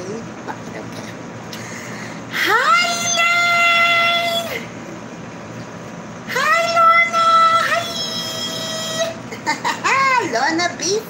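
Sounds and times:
woman speaking quickly: 9.8s - 11.0s.

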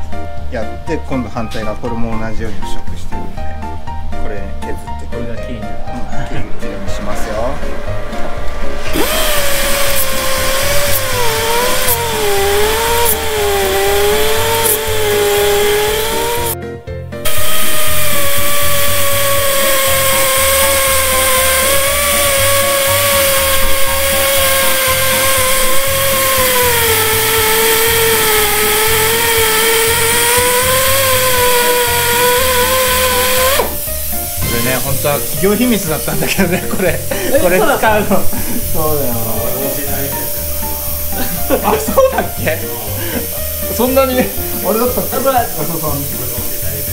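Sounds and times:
background music with low beat: 0.0s - 46.9s
pneumatic grinder whining on metal: 8.6s - 16.6s, 17.2s - 35.5s.

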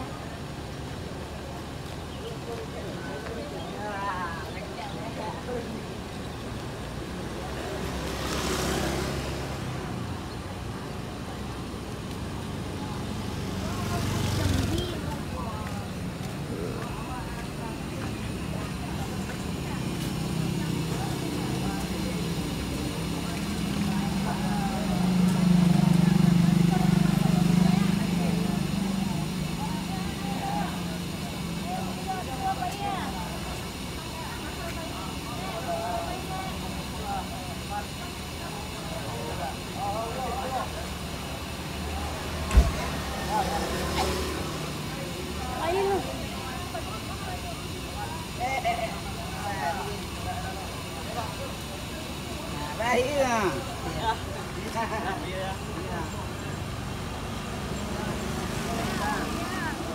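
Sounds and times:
bus diesel engine idling: 0.0s - 59.9s
chatter of passengers: 0.0s - 59.9s.

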